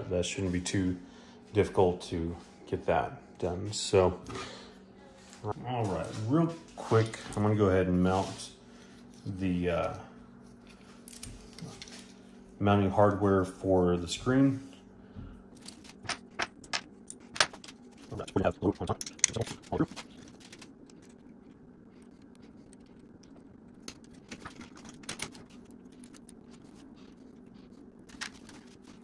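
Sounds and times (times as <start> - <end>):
metal hardware clicking and rattling: 19.0 - 19.6.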